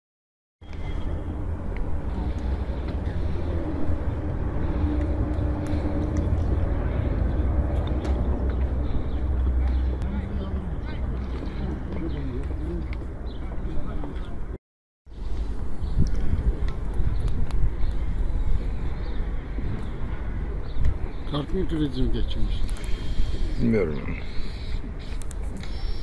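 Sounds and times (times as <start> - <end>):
steady low rumble: 0.6 - 25.4
people talking: 9.6 - 12.9, 21.3 - 22.7, 23.6 - 24.2.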